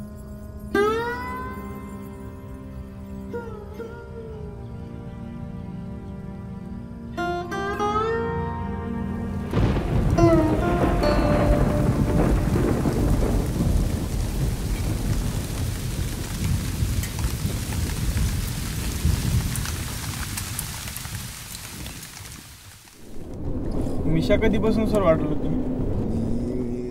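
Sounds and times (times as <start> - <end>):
heavy rain pouring: 9.2 - 26.9
deep rumble of thunder: 9.5 - 22.3, 23.0 - 26.9.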